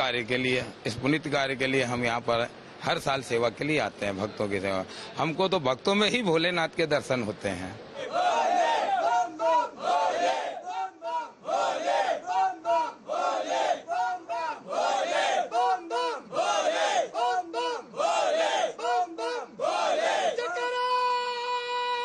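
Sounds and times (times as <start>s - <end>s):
group of men shouting: 8.0s - 22.0s.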